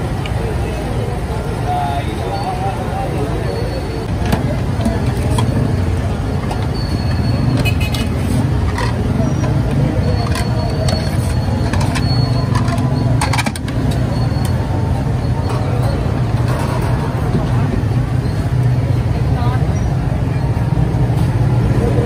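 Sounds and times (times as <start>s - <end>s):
voices: 0.0s - 22.0s
plates and utensils clinking: 6.5s - 13.8s.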